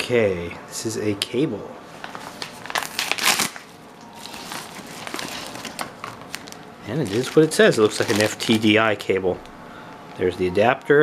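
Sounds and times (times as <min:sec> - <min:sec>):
packaging crinkling and tearing: 0:02.0 - 0:08.9.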